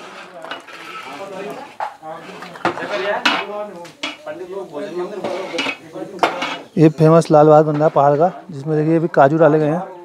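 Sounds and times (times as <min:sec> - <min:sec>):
metal pots and utensils clattering: 0:00.0 - 0:08.6
background voices: 0:00.0 - 0:10.0.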